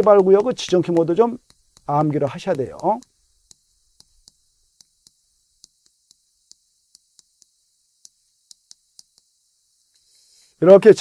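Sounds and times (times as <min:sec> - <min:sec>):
chalk tapping on blackboard: 0:00.0 - 0:10.7.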